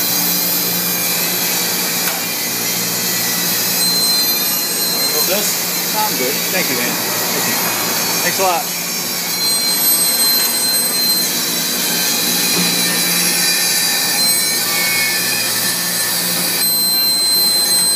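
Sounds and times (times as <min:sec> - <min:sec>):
thin high whine: 0:00.0 - 0:17.9
wire-spooling machine whirring: 0:00.0 - 0:17.9.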